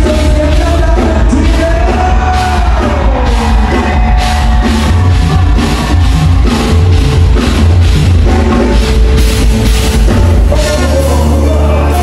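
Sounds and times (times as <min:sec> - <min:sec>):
live band playing dance song: 0:00.0 - 0:12.0.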